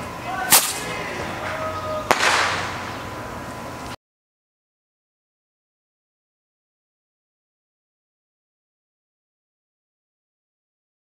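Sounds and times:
firecracker bangs: 0.5s - 0.9s, 2.1s - 3.0s.

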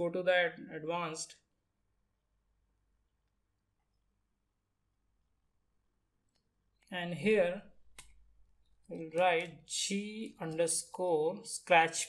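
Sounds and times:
person speaking: 0.0s - 1.5s, 6.8s - 8.1s, 8.8s - 12.0s.

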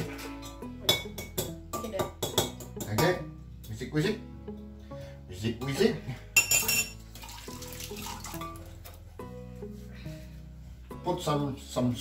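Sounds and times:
acoustic guitar music: 0.0s - 10.9s.

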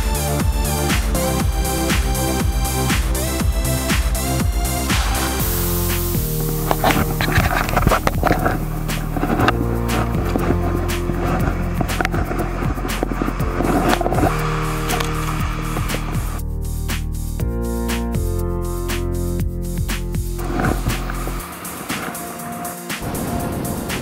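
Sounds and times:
electronic music: 0.0s - 24.0s
rough scraping noise: 4.9s - 16.4s, 20.4s - 24.0s.

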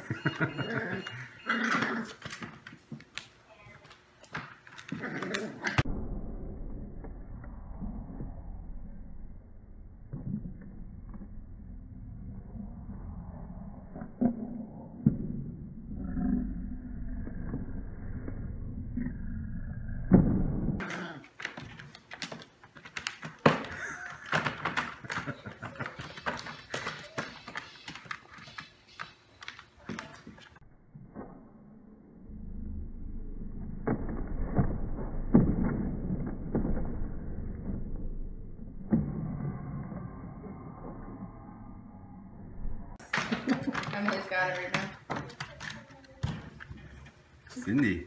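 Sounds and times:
puppies growling: 0.4s - 2.4s, 4.8s - 5.9s
puppies scuffling: 21.4s - 30.6s.

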